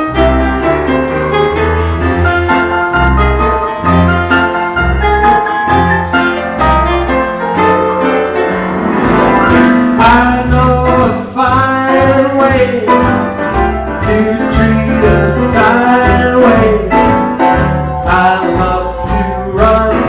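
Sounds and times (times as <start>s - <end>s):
solo piano playing upbeat song: 0.0s - 20.0s.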